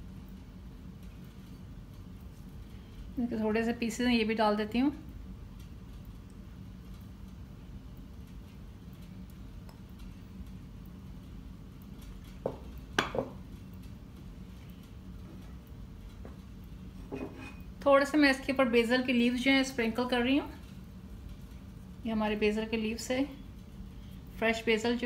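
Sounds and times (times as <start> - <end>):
low steady room hum: 0.0 - 25.0.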